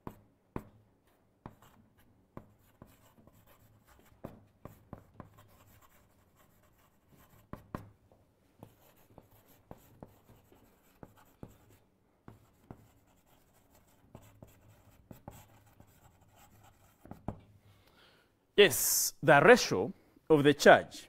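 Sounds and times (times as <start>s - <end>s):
pen writing on paper: 2.4s - 7.8s, 8.6s - 17.4s.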